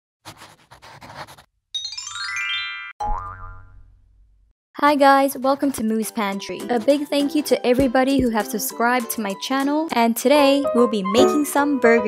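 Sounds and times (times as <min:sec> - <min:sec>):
scratchy rustling: 0:00.2 - 0:01.5
rising boing tone: 0:03.0 - 0:04.2.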